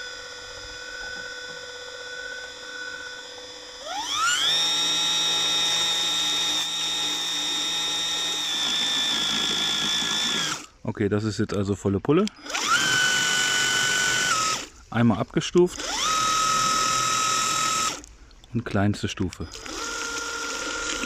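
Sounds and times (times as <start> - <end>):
pump motor whine: 0.0 - 10.8, 12.2 - 14.8, 15.6 - 18.1, 19.3 - 21.0.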